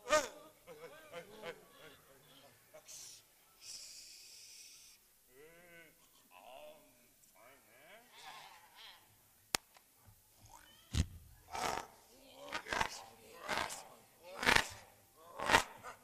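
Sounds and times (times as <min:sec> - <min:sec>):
people making bleat-like calls: 0:00.0 - 0:03.2, 0:11.5 - 0:15.9.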